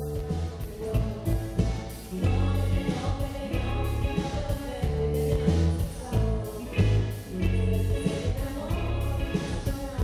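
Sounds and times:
held bass notes: 0.0s - 10.0s
pop-rock band playing: 0.0s - 10.0s
women singing together: 0.5s - 10.0s.

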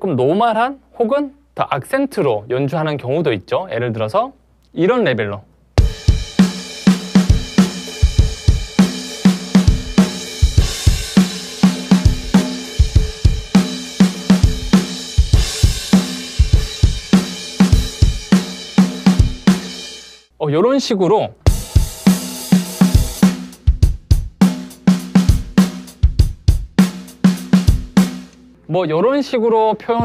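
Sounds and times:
drum kit groove: 5.8s - 20.2s, 21.4s - 28.6s.

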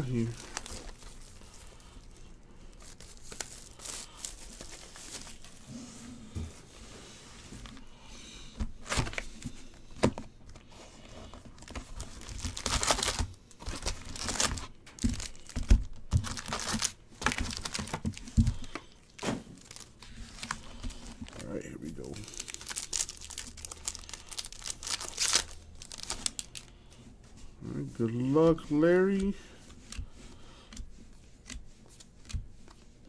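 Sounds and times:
foil packs rustling: 0.0s - 5.7s, 7.5s - 27.0s
plastic wrap and cardboard crinkling: 0.0s - 5.8s, 8.6s - 30.0s.

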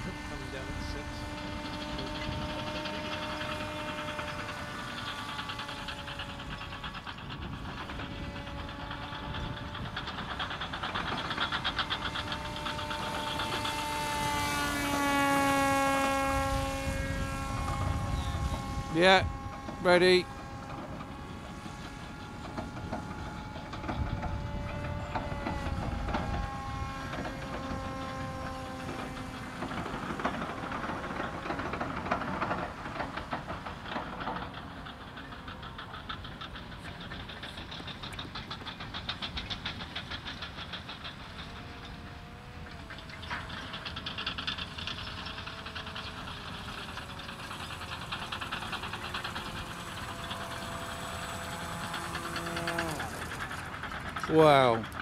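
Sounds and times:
electric motor and propeller buzzing: 0.0s - 55.0s.

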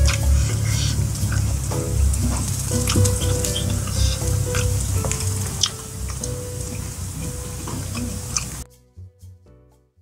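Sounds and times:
chicken sizzling on grill: 0.0s - 8.6s.

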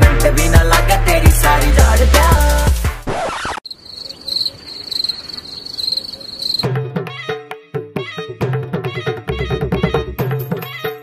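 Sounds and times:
high insect trill: 3.6s - 6.7s.

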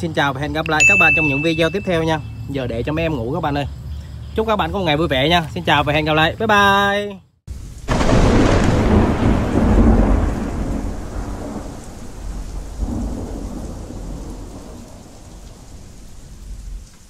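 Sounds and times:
heavy rain: 7.5s - 17.0s
rolling thunder: 7.5s - 17.0s.

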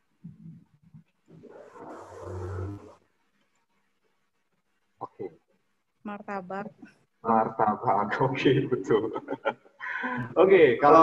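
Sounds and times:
garbled microphone noise: 0.0s - 3.0s.

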